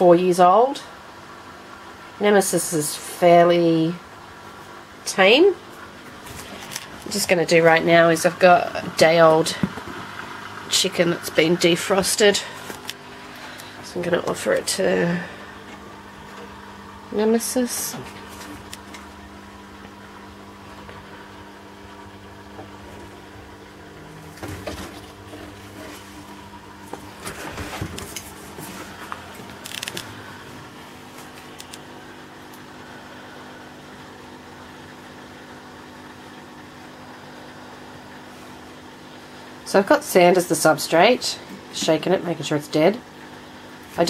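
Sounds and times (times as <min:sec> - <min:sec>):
steady low hum with faint hiss: 0:00.0 - 0:44.0
person speaking: 0:10.7 - 0:15.7, 0:17.1 - 0:18.4.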